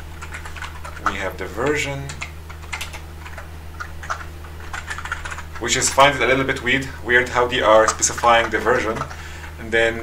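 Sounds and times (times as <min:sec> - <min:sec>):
typing on computer keyboard: 0:02.0 - 0:05.7.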